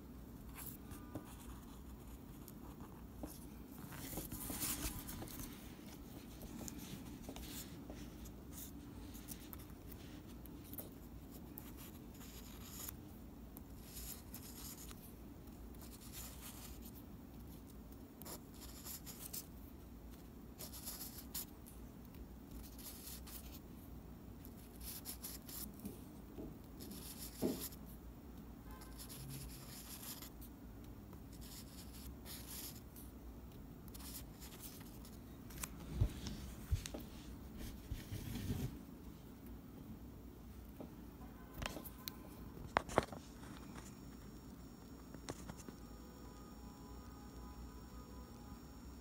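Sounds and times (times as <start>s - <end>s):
low steady hum: 0.0s - 49.0s.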